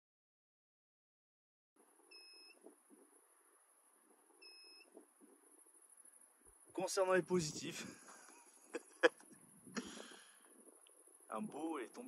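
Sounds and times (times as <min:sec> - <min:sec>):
faint steady high whine: 0:01.8 - 0:12.0
short electronic beeps: 0:02.1 - 0:02.6.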